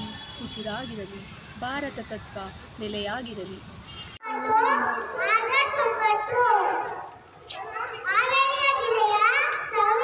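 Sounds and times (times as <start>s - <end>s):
boy speaking into a microphone: 4.2s - 10.0s.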